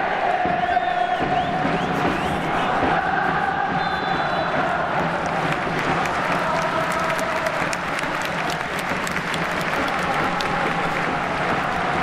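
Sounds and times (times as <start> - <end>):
crowd noise: 0.0 - 12.0
hand claps: 5.0 - 12.0.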